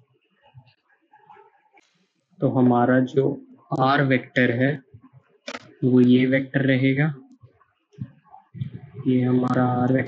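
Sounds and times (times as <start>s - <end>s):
man talking: 2.4s - 5.0s, 5.6s - 7.2s, 8.6s - 10.0s.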